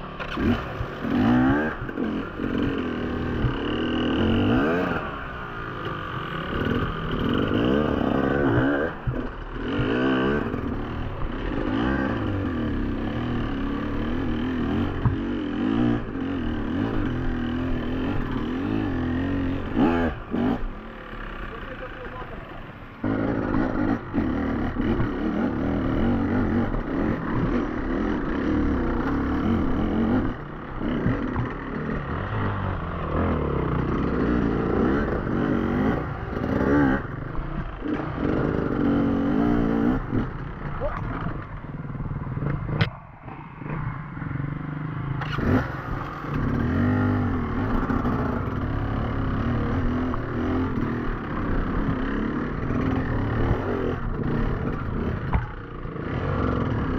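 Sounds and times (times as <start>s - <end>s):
motorcycle engine revving: 0.0s - 56.9s.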